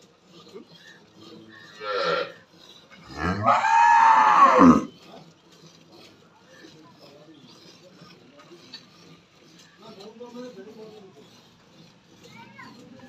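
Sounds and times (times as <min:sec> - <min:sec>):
cow mooing: 0:01.8 - 0:02.4, 0:03.0 - 0:04.9.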